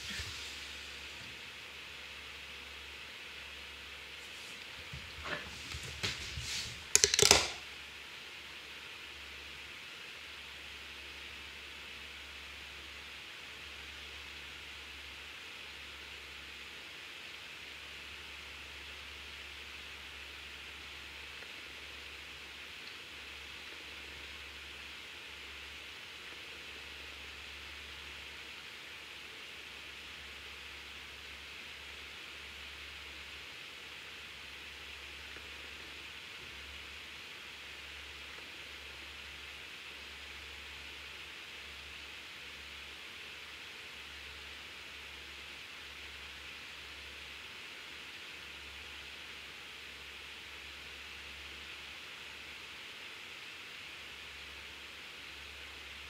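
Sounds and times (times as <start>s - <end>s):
faint hiss: 0.0s - 56.0s.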